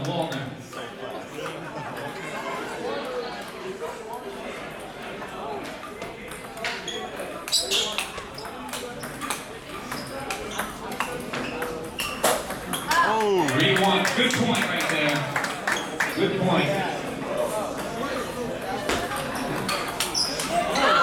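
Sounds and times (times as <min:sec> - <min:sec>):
background chatter: 0:00.0 - 0:21.0.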